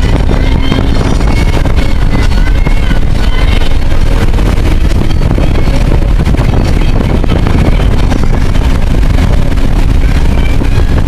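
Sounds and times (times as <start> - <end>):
engine and road noise in cabin: 0.0 - 11.0.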